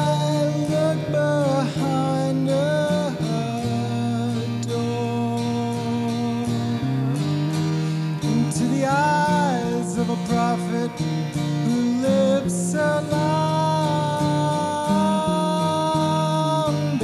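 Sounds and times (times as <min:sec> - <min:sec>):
man singing: 0:00.0 - 0:07.3, 0:08.2 - 0:17.0
guitar sustained chords: 0:00.0 - 0:17.0.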